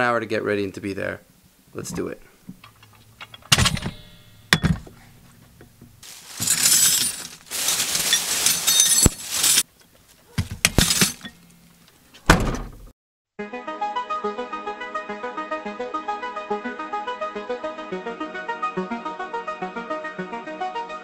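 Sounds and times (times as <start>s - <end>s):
metal tools clanking on truck bed: 2.6s - 9.6s, 10.4s - 11.8s
plastic bags rustling: 6.0s - 11.8s.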